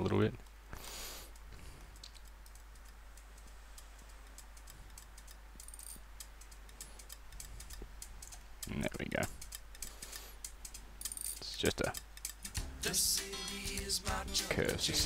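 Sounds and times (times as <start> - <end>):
low steady hum: 0.0 - 15.0
computer mouse and keyboard clicks: 0.4 - 12.6.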